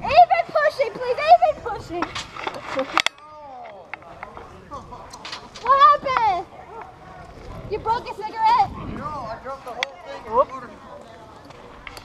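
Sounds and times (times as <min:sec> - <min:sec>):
group of people talking: 0:00.0 - 0:12.0.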